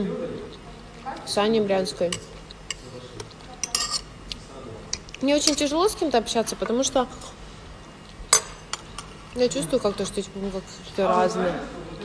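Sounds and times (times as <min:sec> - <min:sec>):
fork clinking on a plate: 0:03.6 - 0:04.1.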